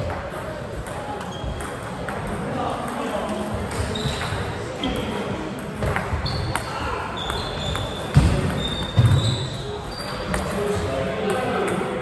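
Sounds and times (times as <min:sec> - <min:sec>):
voices chattering: 0:00.0 - 0:12.0
shoes squeaking on floor: 0:01.2 - 0:01.8, 0:03.6 - 0:04.9, 0:05.8 - 0:10.8.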